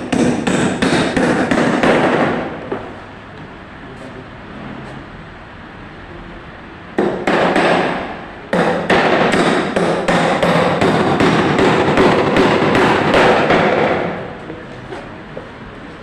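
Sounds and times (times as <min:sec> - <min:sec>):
hammer striking wood: 0:00.0 - 0:02.8, 0:07.0 - 0:14.2.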